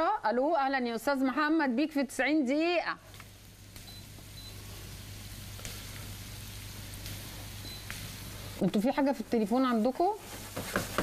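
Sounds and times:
telephone line hiss: 0:03.7 - 0:08.6.

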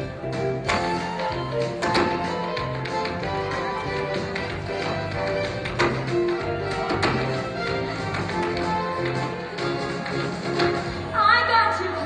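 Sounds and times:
instrumental show tune: 0:00.0 - 0:12.0
tap shoes on wooden floor: 0:00.6 - 0:10.8.

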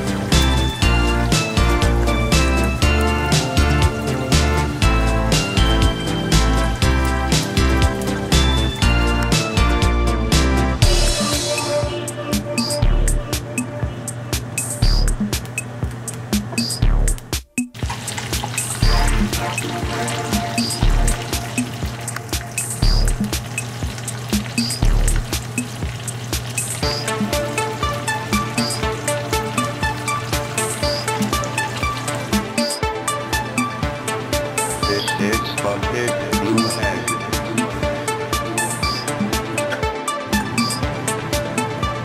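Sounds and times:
music with steady beat: 0:00.0 - 0:42.0.

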